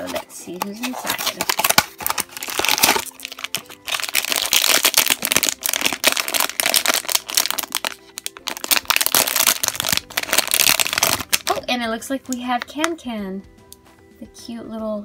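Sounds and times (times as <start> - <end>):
foil pouch crinkling and tearing: 0.1 - 11.6.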